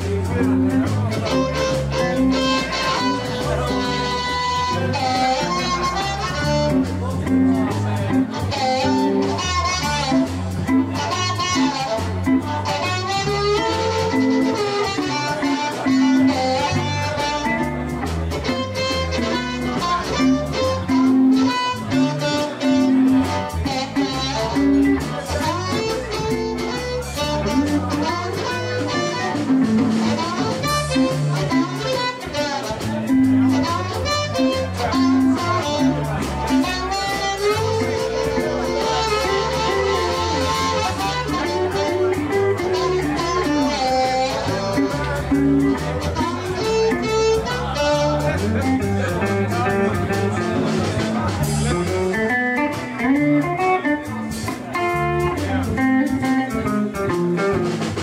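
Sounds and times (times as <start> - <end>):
electric blues band playing: 0.0 - 58.0
amplified harmonica: 0.9 - 7.1, 7.7 - 48.8.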